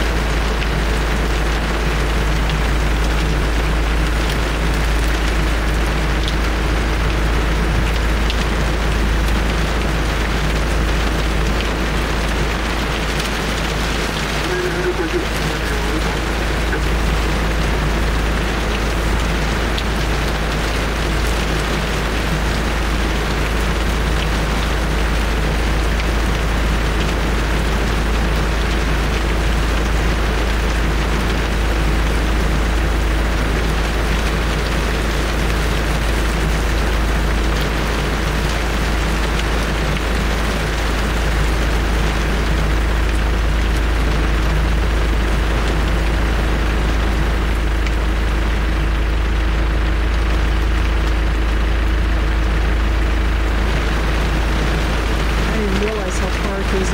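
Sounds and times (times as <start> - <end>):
deep rumble: 0.0 - 56.9
heavy rain: 0.0 - 56.9.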